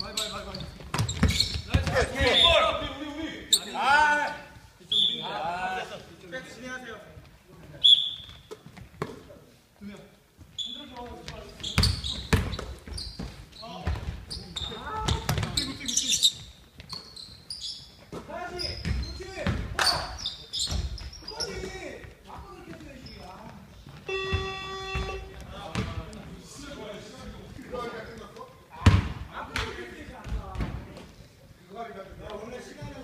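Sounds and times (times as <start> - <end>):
players' voices and shouts: 0.0 - 7.1
basketball bouncing on wooden floor: 0.8 - 2.3, 11.7 - 14.2, 14.9 - 15.7, 18.8 - 19.8, 24.3 - 26.0.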